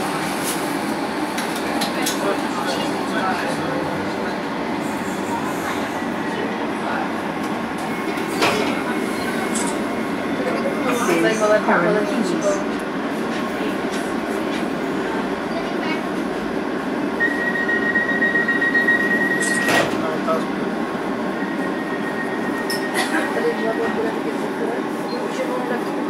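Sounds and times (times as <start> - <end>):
train wheels rumbling on track: 0.0 - 26.0.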